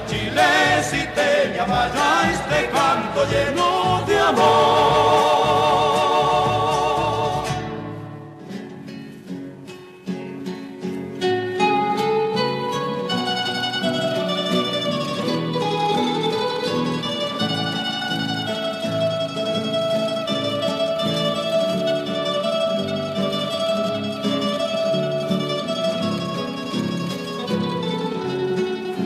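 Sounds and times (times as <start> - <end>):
plucked acoustic guitars: 0.0 - 29.0.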